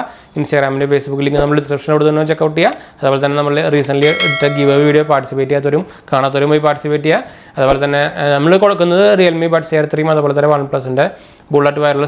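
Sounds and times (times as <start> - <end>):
bell chime: 4.0 - 5.2.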